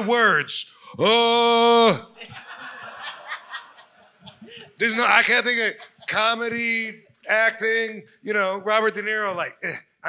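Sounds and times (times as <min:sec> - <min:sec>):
people laughing and chuckling: 0:02.2 - 0:07.2.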